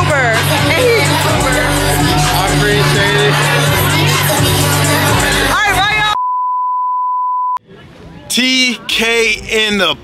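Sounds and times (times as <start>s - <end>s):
censor bleep: 6.2s - 7.6s.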